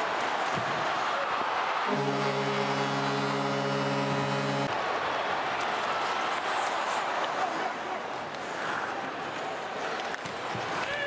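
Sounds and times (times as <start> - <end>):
roaring arena crowd: 0.0 - 11.0
goal horn blaring: 1.9 - 4.8.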